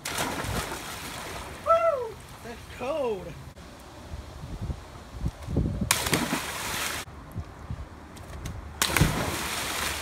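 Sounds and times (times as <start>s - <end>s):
splash into pool: 0.0s - 1.6s, 5.9s - 7.1s, 8.8s - 10.0s
water churning: 8.8s - 10.0s.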